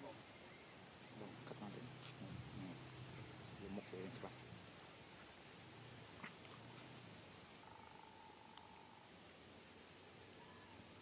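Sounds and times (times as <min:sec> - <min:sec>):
faint chirp: 0:00.0 - 0:01.7, 0:07.5 - 0:09.1, 0:10.2 - 0:11.0
faint low hum: 0:00.0 - 0:11.0.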